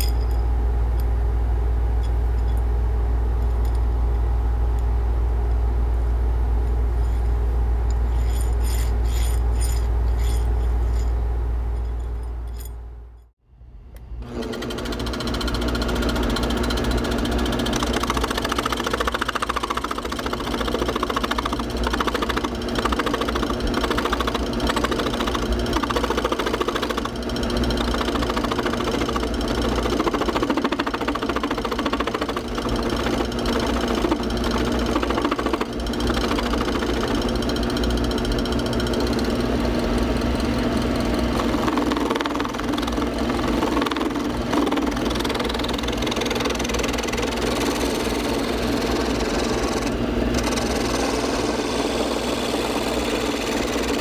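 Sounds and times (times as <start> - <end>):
lathe motor humming: 14.2 - 54.0.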